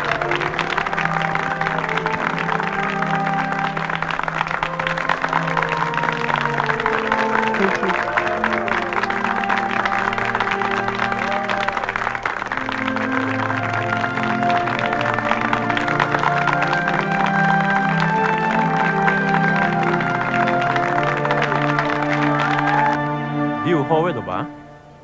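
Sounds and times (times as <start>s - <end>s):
film music with long held notes: 0.0s - 25.0s.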